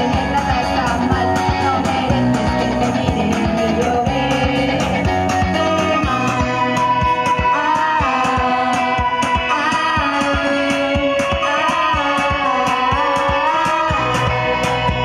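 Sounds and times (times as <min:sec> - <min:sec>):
electric bass: 0:00.0 - 0:15.0
electric guitar: 0:00.0 - 0:15.0.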